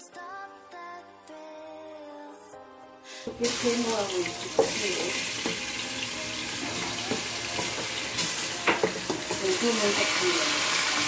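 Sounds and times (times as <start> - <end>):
chicken sizzling in hot oil: 3.2 - 11.0
pieces knocking in pot: 4.2 - 5.9, 6.6 - 10.1.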